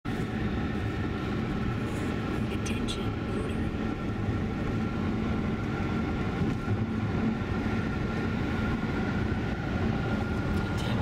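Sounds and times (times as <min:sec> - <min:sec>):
road and tyre noise in car cabin: 0:00.0 - 0:11.0.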